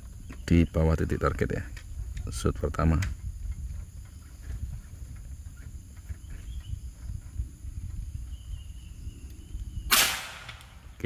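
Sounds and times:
low outdoor rumble: 0:00.0 - 0:11.0
air rifle shot: 0:09.9 - 0:10.9.

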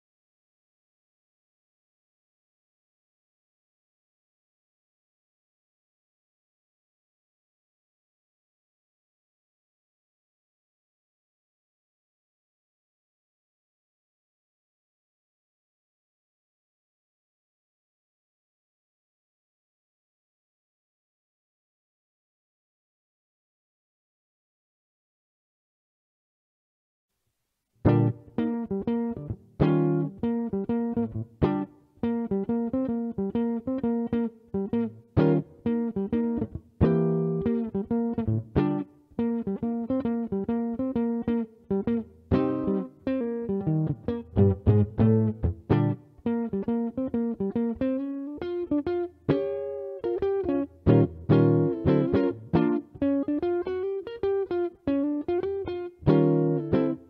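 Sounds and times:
clean electric guitar picking: 0:27.9 - 0:57.0.

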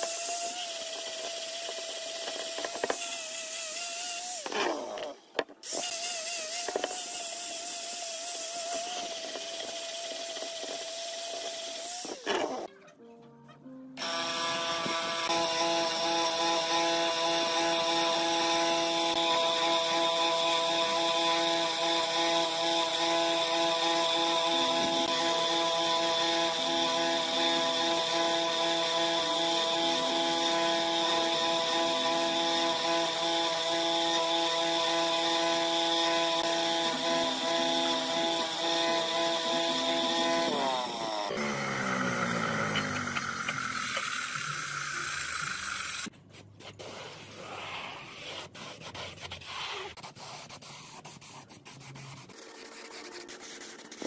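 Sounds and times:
angle grinder whine: 0:14.0 - 0:46.1
bench motor wire wheel whine: 0:14.0 - 0:46.1.

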